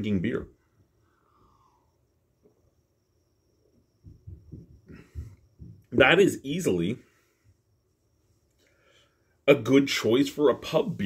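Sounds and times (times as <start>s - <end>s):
man swallowing and breathing: 4.4s - 5.9s.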